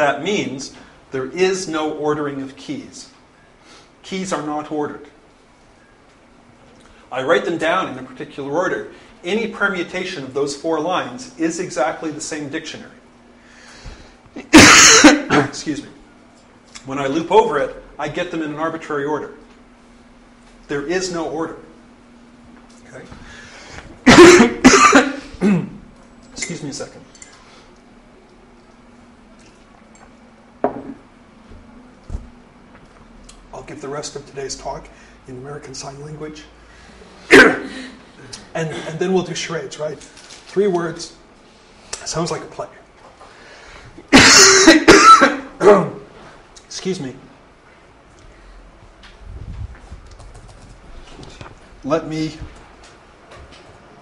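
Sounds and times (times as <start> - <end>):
man coughing: 14.4 - 15.6, 24.0 - 25.8, 37.3 - 39.0, 44.1 - 45.5.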